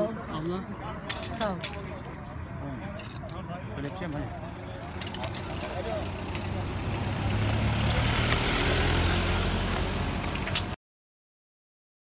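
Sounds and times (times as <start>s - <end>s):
faint voices: 0.0s - 8.2s
vehicle engine running: 4.3s - 10.8s.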